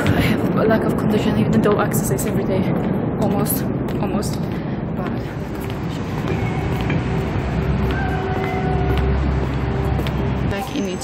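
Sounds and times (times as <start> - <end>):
traffic rumble and hiss: 0.0 - 11.0.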